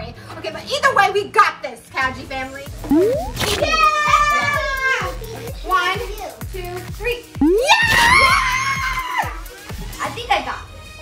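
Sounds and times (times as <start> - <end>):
woman screaming: 7.4 - 9.4.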